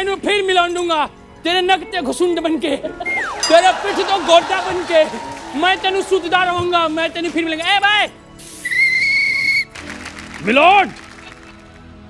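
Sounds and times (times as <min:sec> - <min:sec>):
whistle high tone: 0:03.0 - 0:05.4, 0:08.6 - 0:09.7.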